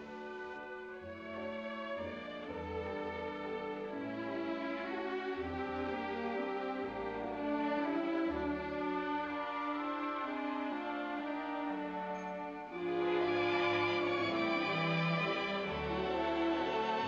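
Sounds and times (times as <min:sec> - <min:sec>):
violins: 0:00.0 - 0:17.0.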